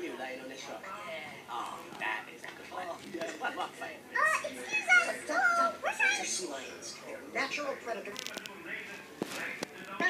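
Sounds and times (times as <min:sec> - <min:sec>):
child speaking and vocalising: 0:04.2 - 0:06.5.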